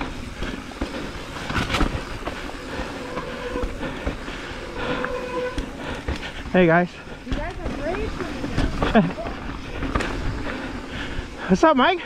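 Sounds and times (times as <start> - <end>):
bike rattling over bumps: 0.0 - 12.0
bike tyres rumbling on dirt: 0.0 - 12.0.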